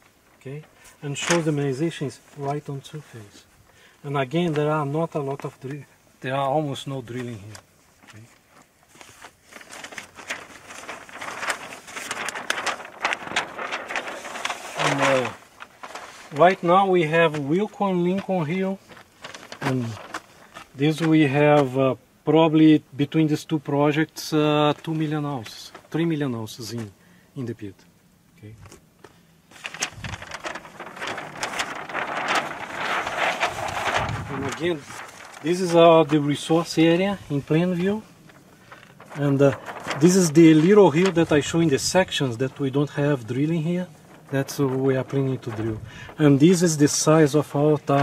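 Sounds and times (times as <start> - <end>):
paper sheet rustling and crackling: 0.0 - 21.9, 24.2 - 27.0, 28.6 - 48.0.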